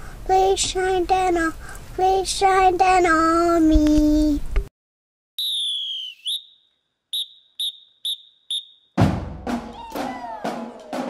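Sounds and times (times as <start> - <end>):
whistle blasts and tweets: 5.4 - 9.0.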